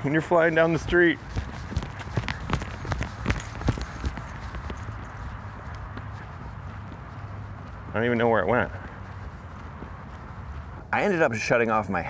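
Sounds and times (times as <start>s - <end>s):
footsteps on asphalt: 0.0s - 12.0s.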